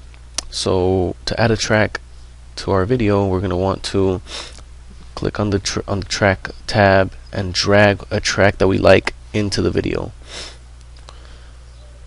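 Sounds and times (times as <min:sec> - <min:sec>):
low electrical hum: 0:00.0 - 0:12.0
person breathing in: 0:10.2 - 0:11.7.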